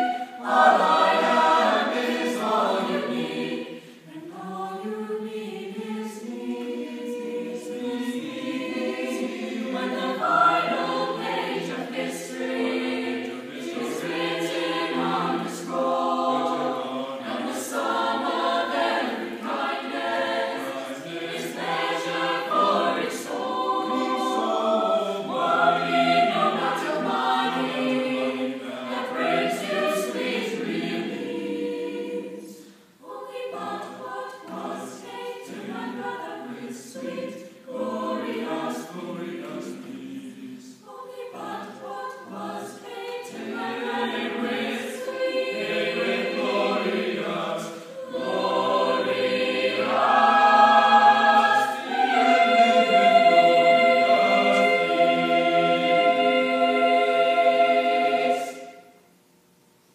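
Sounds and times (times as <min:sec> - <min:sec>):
mixed choir singing: 0:00.0 - 0:59.1.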